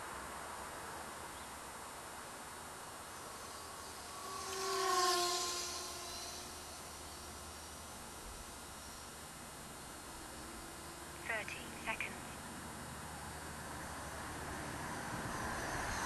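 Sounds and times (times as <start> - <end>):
steady background hiss: 0.0 - 16.0
model plane propeller and motor hum: 2.9 - 11.3.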